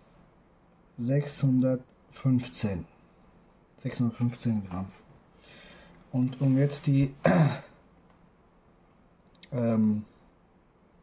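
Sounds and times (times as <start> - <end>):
man clearing his throat: 7.2 - 7.8.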